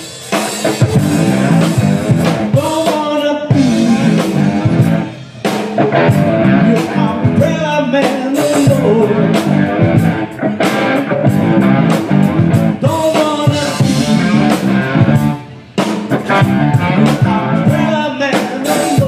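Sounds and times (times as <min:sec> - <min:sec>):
bass guitar: 0:00.0 - 0:19.0
drum kit: 0:00.0 - 0:19.0
electric guitar lead: 0:00.0 - 0:19.0.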